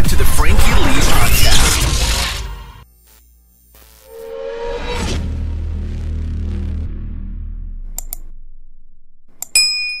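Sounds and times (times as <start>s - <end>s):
mouse clicks: 8.0s - 8.2s
bright bell ding: 9.5s - 10.0s.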